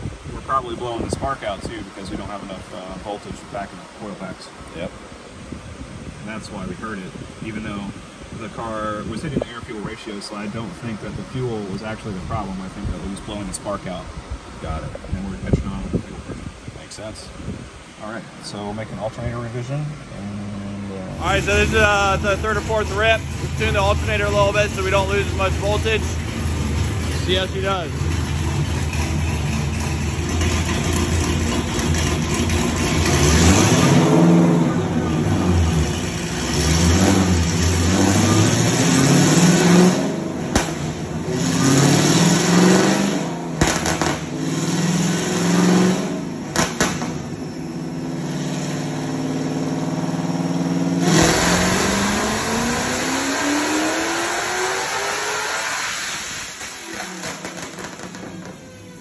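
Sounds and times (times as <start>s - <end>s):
engine revving on dyno: 20.2s - 58.5s
sharp exhaust cracks: 21.2s - 53.9s, 54.7s - 59.0s.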